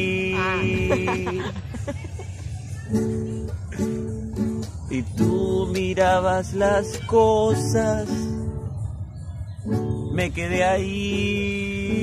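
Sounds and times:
acoustic guitar chords strummed: 0.0s - 1.7s, 2.9s - 8.7s, 9.6s - 12.0s.

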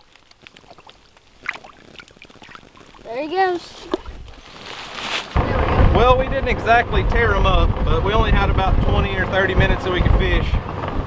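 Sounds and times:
wind buffeting microphone: 2.4s - 4.5s, 5.3s - 11.0s
utility vehicle engine rumble: 5.4s - 11.0s.

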